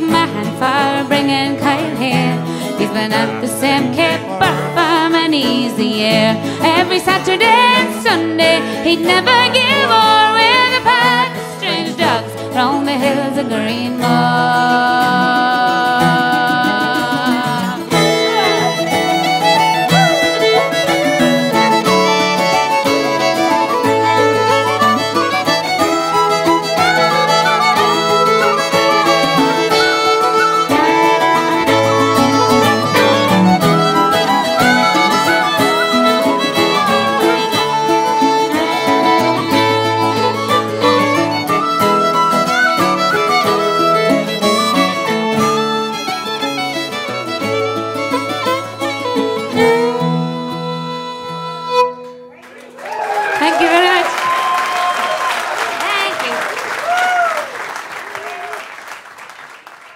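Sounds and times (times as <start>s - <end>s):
folk band with fiddle playing: 0.0s - 52.4s
audience applause with cheers: 23.8s - 40.0s, 52.3s - 59.9s.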